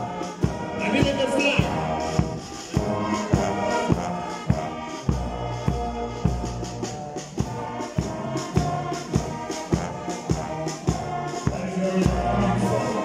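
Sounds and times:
brass band playing: 0.0 - 13.0
steady drum beat: 0.0 - 13.0.

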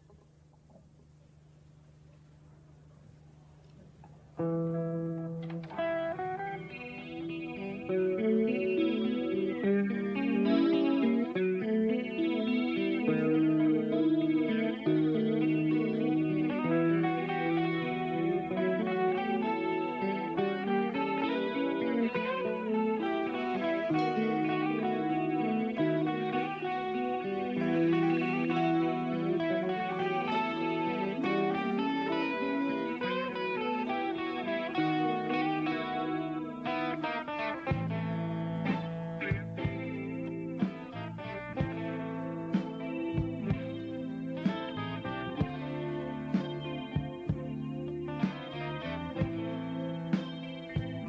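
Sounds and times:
electric guitars: 3.6 - 51.0
live blues band playing: 5.3 - 51.0.

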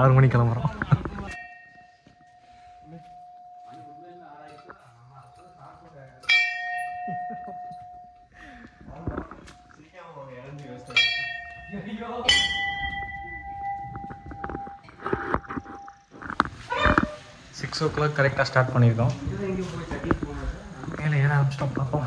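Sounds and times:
temple bell ringing: 1.3 - 9.8, 10.7 - 14.8.

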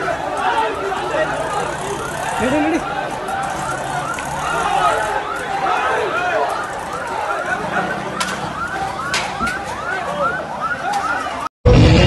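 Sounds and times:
sirens yelping: 0.0 - 11.5.

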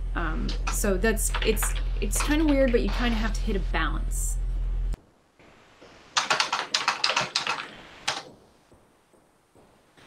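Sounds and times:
computer keyboard typing: 0.5 - 3.3, 6.2 - 8.3.

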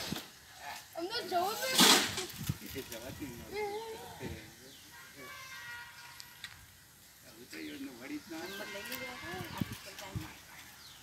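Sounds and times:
people talking in background: 0.4 - 11.0.

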